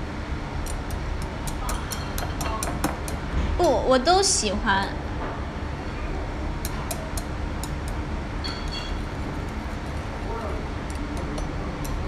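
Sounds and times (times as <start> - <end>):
high ringing clink: 8.4 - 9.0.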